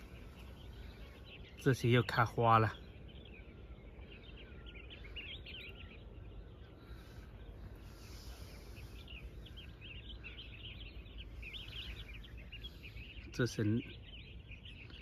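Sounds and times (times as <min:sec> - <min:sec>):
small birds chirping: 0:00.0 - 0:15.0.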